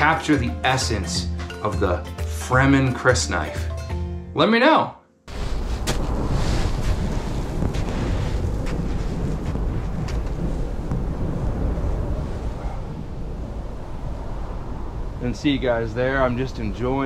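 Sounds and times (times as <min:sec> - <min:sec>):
footsteps on gravel: 0:05.3 - 0:11.1
wind buffeting microphone: 0:05.3 - 0:17.0.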